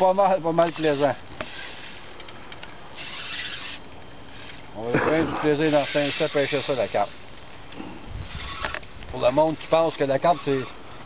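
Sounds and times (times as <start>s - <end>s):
fishing reel ticking: 0.0s - 11.0s
fishing reel click: 0.5s - 4.7s.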